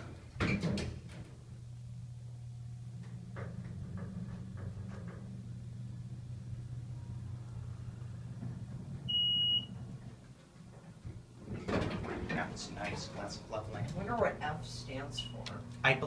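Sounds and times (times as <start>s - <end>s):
elevator humming: 0.0s - 16.0s
electronic beep: 9.1s - 9.7s.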